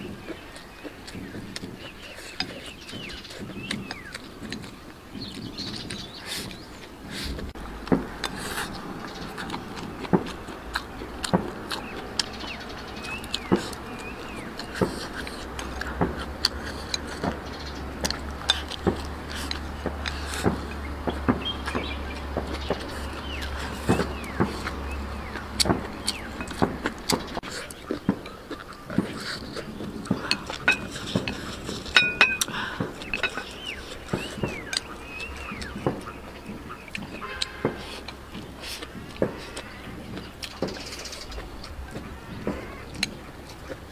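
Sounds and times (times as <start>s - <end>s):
chewing: 0.0s - 43.9s
low steady hum: 0.0s - 43.9s
chopsticks clicking on porcelain bowl: 30.3s - 33.4s.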